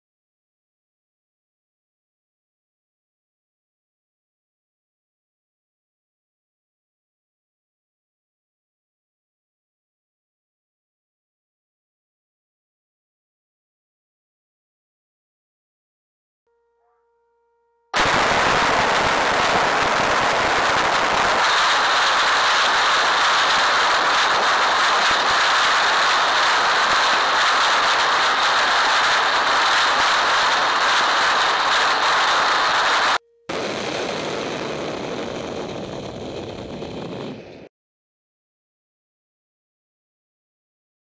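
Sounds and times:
rocket motors roaring: 18.0 - 37.7.

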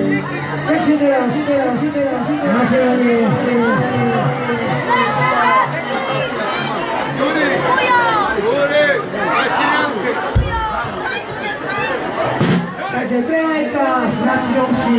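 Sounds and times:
live band music: 0.0 - 7.1, 10.6 - 13.0
voices talking and calling out: 0.0 - 14.9.

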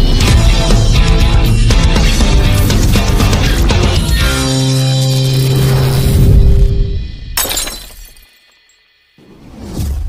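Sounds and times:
rock-style jingle: 0.0 - 7.1
glass shattering: 7.4 - 8.8.

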